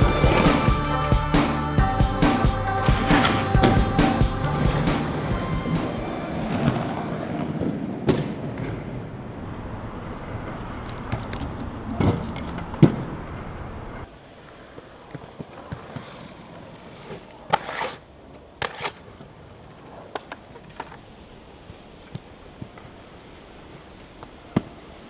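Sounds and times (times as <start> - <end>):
soundtrack music: 0.0 - 7.2
skate wheels rolling on concrete: 0.0 - 25.0
skates knocking and landing: 5.8 - 9.1, 10.6 - 13.4, 14.6 - 21.0.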